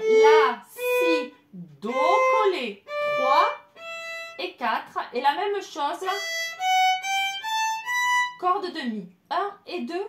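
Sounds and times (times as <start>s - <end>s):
violin notes climbing: 0.0s - 4.4s, 6.1s - 8.4s.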